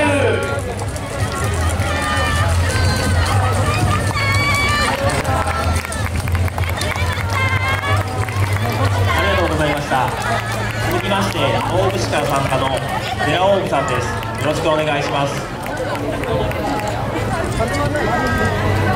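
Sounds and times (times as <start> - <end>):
crowd noise: 0.0 - 18.9
people calling out and chattering: 0.0 - 18.9.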